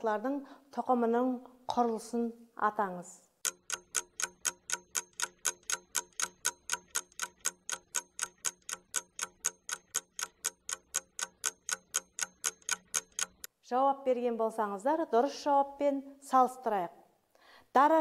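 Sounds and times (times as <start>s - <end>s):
clock ticking: 3.4s - 13.5s.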